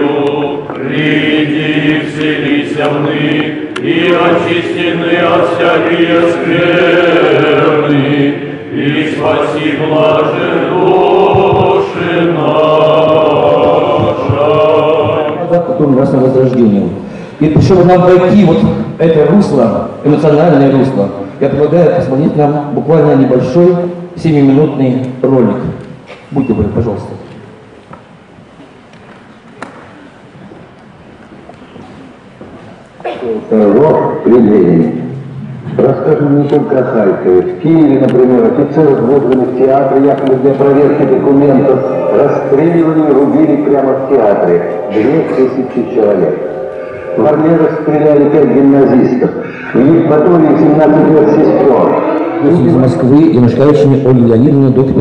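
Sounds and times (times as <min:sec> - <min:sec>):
congregation singing a hymn: 0:00.0 - 0:16.5, 0:35.8 - 0:54.4
film soundtrack over speakers: 0:00.0 - 0:24.4, 0:27.3 - 0:55.0
hall room noise: 0:00.0 - 0:55.0
person speaking: 0:35.4 - 0:55.0.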